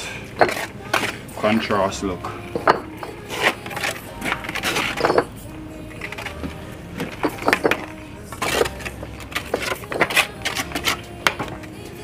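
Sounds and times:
trowel knocking and scraping on bricks: 0.4 - 1.2, 2.5 - 5.3, 6.0 - 11.7.

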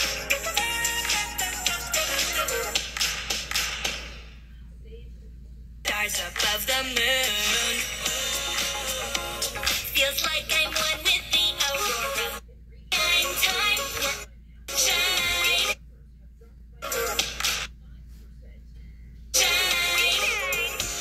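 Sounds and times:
pop song with singing: 0.0 - 3.7, 5.9 - 15.8, 16.8 - 17.7, 19.3 - 21.0.

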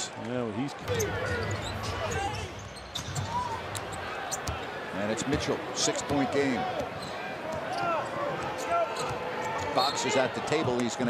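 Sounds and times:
crowd noise: 0.0 - 11.0
sneakers squeaking on hardwood: 0.9 - 4.7, 8.6 - 10.0.

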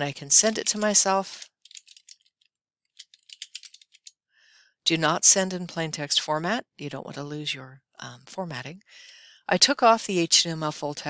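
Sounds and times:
computer keyboard key clicks: 3.0 - 4.1.

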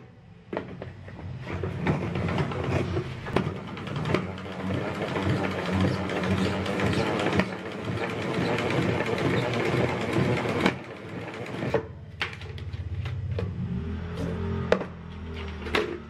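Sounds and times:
salad spinner whirring and rattling: 1.1 - 12.6.

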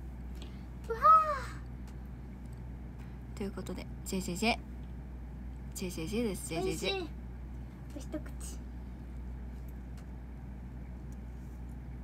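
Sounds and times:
young woman's high exclamation: 0.9 - 1.6.

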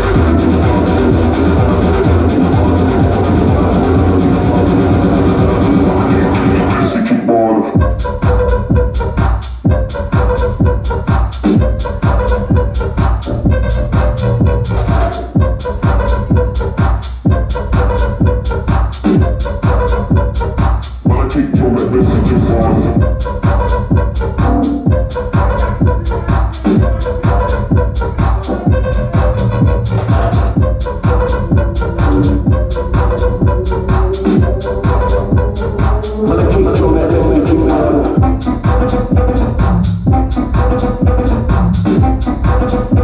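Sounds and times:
electronic dance music: 0.0 - 43.0.

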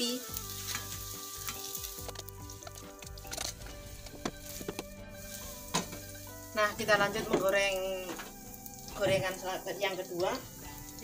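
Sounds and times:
oil sizzling in a frying pan: 0.0 - 11.0.

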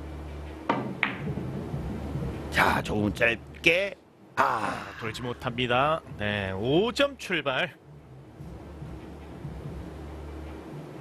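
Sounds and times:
low steady hum: 0.0 - 11.0
cue tip striking ball: 0.7 - 1.4.

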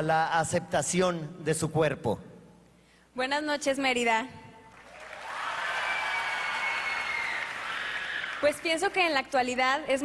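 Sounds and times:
audience applauding and cheering: 4.7 - 9.0.

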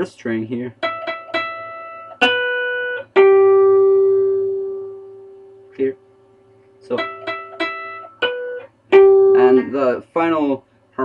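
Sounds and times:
electric guitar harmonics: 6.8 - 9.9.

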